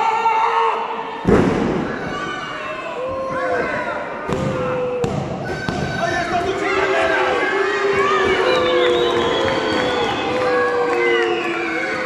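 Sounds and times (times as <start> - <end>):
people shouting in a hall: 0.0 - 12.0.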